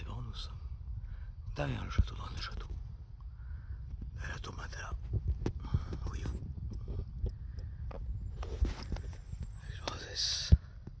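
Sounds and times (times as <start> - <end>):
low microphone rumble: 0.0 - 11.0
person whispering: 4.1 - 6.5, 9.6 - 10.8.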